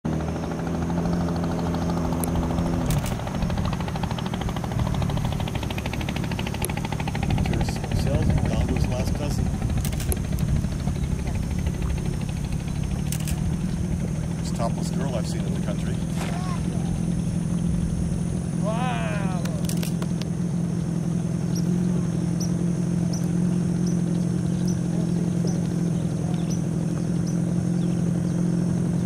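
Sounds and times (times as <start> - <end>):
boat motor running: 0.0 - 29.0.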